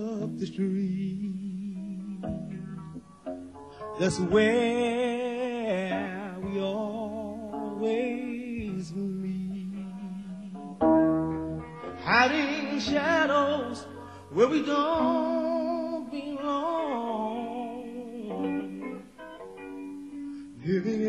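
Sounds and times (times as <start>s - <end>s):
guitar accompaniment: 0.0s - 21.0s
men singing soul ballad: 12.0s - 18.8s.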